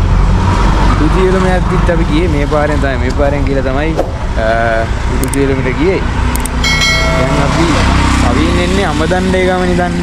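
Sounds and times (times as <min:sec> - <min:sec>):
auto-rickshaw engine running: 0:00.0 - 0:10.0.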